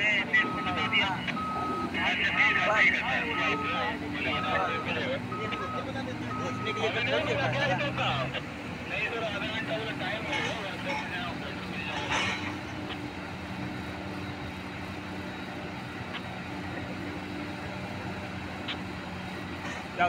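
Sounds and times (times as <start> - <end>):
diesel drone of heavy machinery: 0.0 - 20.0.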